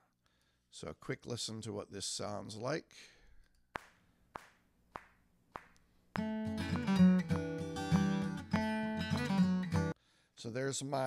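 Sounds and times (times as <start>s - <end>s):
count-in hand claps: 3.8s - 6.4s
guitar strumming: 6.2s - 10.0s.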